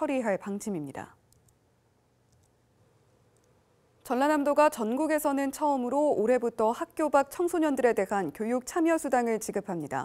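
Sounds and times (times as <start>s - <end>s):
very faint clicks: 3.3s - 3.6s.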